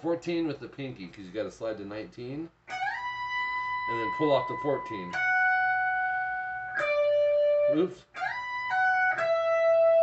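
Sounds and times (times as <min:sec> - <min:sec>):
electric guitar lead line: 0:02.7 - 0:10.0.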